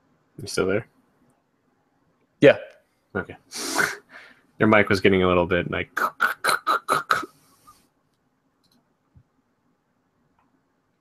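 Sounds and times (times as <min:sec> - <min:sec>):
person imitating microphone crackling: 0:05.8 - 0:07.4.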